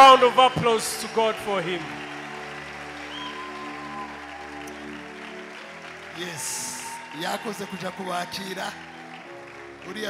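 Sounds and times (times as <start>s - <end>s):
congregation applauding: 0.0s - 10.0s.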